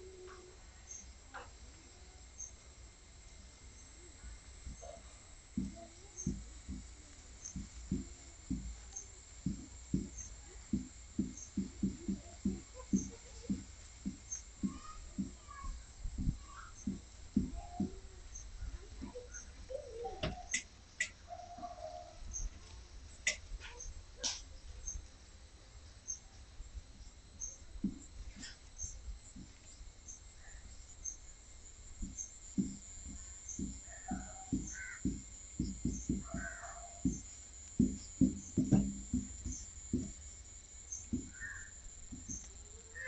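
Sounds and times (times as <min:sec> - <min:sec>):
marker tapping on whiteboard: 0:07.5 - 0:15.4, 0:32.0 - 0:40.2, 0:41.0 - 0:42.4
birds cawing: 0:33.4 - 0:38.8, 0:40.9 - 0:43.0.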